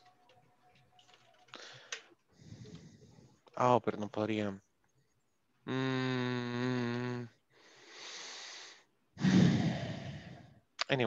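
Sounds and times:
man sighing: 0:05.6 - 0:07.4, 0:08.0 - 0:10.6.

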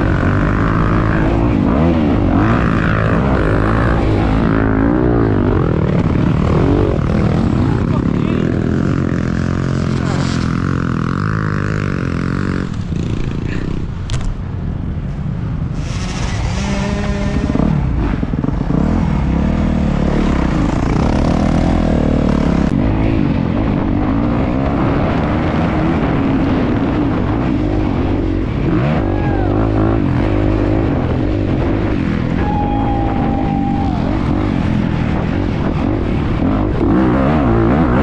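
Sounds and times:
dirt bike engine revving: 0:00.0 - 0:13.9, 0:15.7 - 0:38.0.

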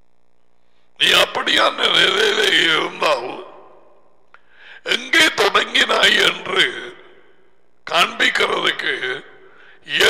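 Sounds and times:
soft in-breath: 0:00.6 - 0:01.0, 0:04.3 - 0:04.9, 0:09.4 - 0:09.9
man speaking: 0:01.0 - 0:03.9, 0:04.9 - 0:07.2, 0:07.9 - 0:10.0.

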